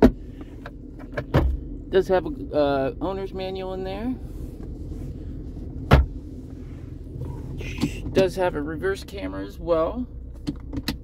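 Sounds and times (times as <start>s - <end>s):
truck engine idling: 0.0s - 11.0s
glove box lid thump: 5.9s - 6.2s.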